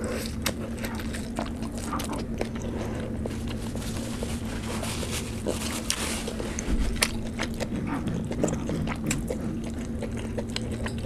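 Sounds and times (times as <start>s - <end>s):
low hum: 0.0s - 11.0s
wet chewing: 0.0s - 11.0s.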